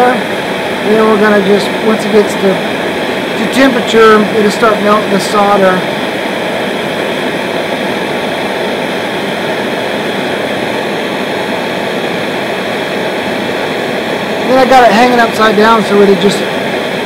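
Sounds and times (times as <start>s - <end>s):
gas torch hissing: 0.0s - 17.0s.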